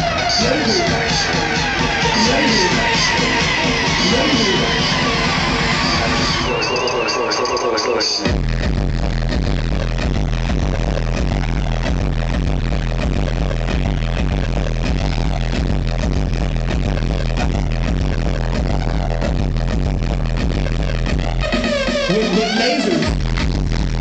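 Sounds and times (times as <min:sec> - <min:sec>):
heavy steady bass: 0:00.0 - 0:07.3, 0:08.2 - 0:24.0
electronic dance music: 0:00.0 - 0:24.0.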